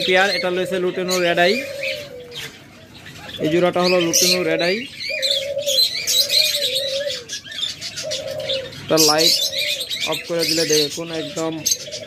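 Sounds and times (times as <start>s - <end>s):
budgerigars chirping: 0.0s - 12.0s
doves cooing: 0.0s - 12.0s.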